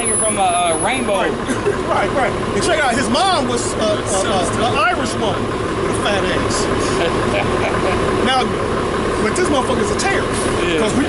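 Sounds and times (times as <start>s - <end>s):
man speaking: 0.0s - 8.6s
man laughing: 1.2s - 2.3s, 6.6s - 8.2s.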